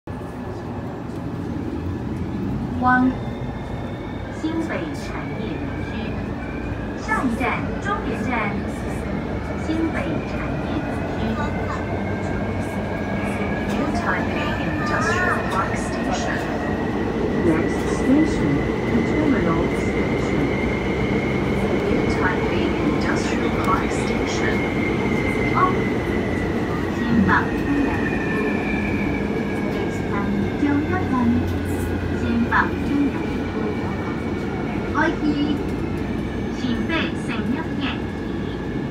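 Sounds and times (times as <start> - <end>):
train rumble: 0.1 - 38.9.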